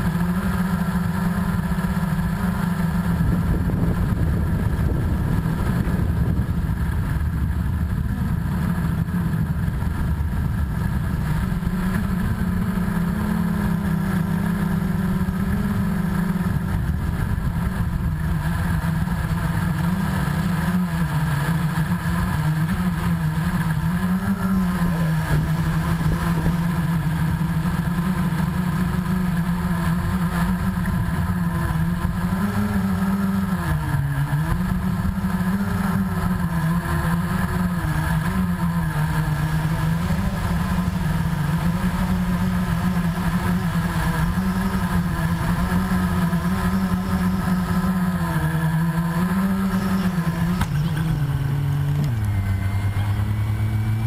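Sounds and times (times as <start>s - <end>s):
quadcopter motors humming: 0.0s - 54.0s
low rumble: 3.1s - 19.4s.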